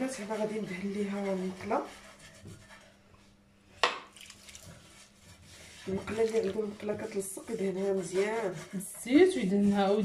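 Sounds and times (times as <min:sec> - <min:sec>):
woman's voice: 0:00.0 - 0:01.9, 0:05.8 - 0:10.0
faint handling sounds: 0:02.4 - 0:07.1.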